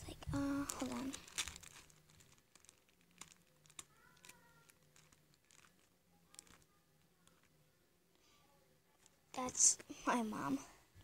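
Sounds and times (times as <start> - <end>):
soft handling rustles: 0.0 - 9.6.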